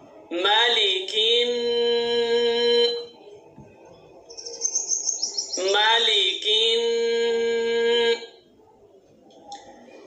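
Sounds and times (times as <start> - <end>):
person chanting a long vowel: 0.3 - 3.2, 5.5 - 8.4.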